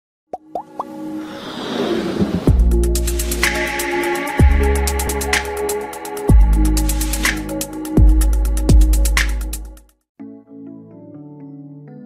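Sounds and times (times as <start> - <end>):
whoosh: 1.1 - 3.5.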